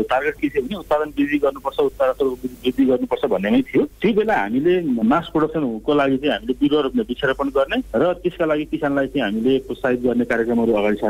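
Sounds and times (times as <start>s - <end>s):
person talking on telephone line: 0.0s - 11.0s.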